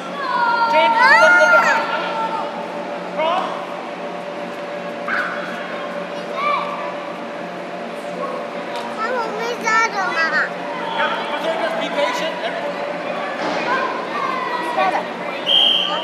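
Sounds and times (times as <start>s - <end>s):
children shouting: 0.0s - 2.6s, 10.0s - 12.5s, 13.2s - 16.0s
steady low hum: 0.0s - 16.0s.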